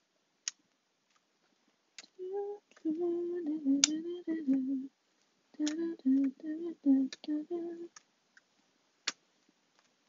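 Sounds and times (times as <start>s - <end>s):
person humming: 2.0s - 4.9s, 5.6s - 8.0s
finger snaps: 3.8s - 4.6s, 5.6s - 6.3s.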